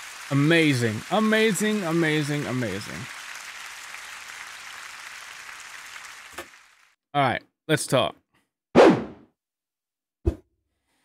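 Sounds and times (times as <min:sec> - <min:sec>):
audience applauding: 0:00.0 - 0:07.0.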